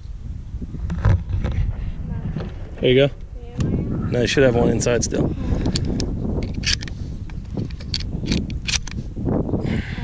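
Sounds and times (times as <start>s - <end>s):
wind rumble on microphone: 0.0s - 10.0s
shotgun shells clicking into magazine: 7.6s - 9.0s.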